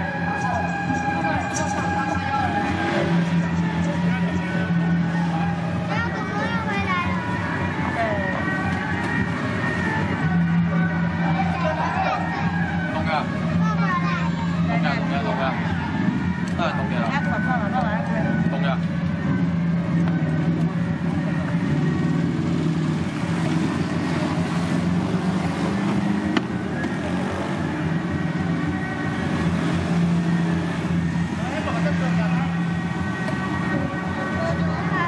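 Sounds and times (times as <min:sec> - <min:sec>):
people talking in the street: 0:00.0 - 0:35.0
vehicle engine humming: 0:00.0 - 0:35.0.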